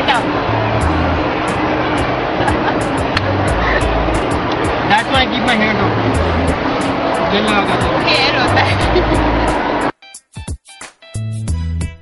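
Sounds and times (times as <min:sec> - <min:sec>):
people's voices: 0:00.0 - 0:09.9
steady noise: 0:00.0 - 0:09.9
background music: 0:00.0 - 0:12.0.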